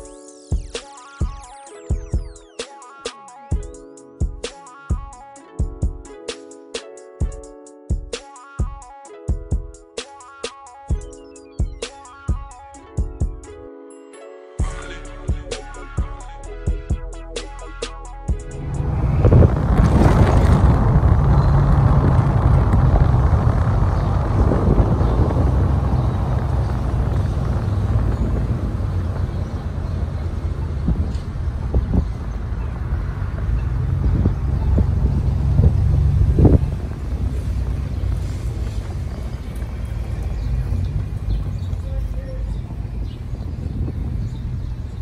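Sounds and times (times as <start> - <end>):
vehicle engine and road rumble: 18.3 - 45.0
wind buffeting microphone: 18.4 - 45.0.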